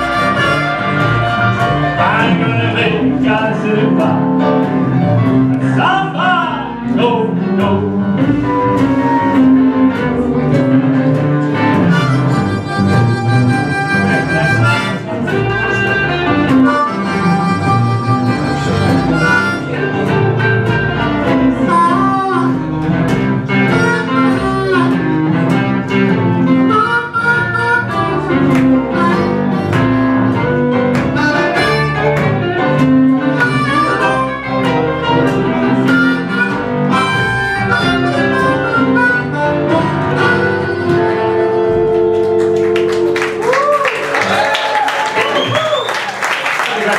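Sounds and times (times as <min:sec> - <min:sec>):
harmonica with bent notes: 0:00.0 - 0:04.2, 0:08.1 - 0:43.2
keyboard: 0:00.0 - 0:43.4
drums: 0:00.0 - 0:46.2
guitar: 0:00.0 - 0:46.9.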